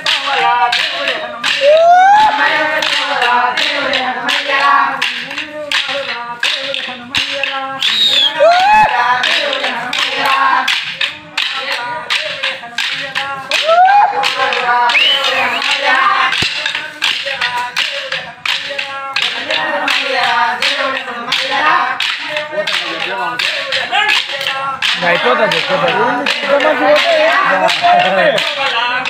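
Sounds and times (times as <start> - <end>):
group singing: 0.0 - 29.0
wooden sticks clacking: 0.0 - 29.0.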